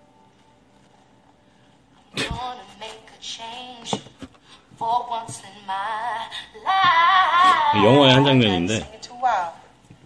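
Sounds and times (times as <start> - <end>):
low voice singing with vibrato: 5.7 - 8.2.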